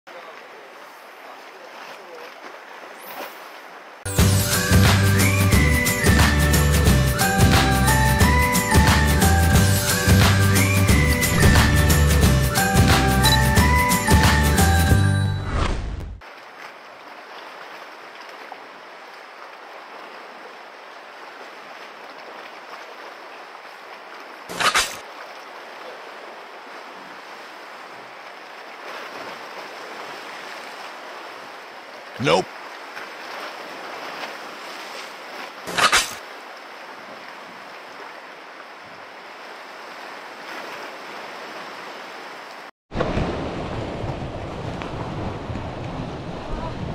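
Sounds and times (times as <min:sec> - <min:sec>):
wind: 0:00.1 - 0:46.9
rising swish: 0:11.0 - 0:12.3.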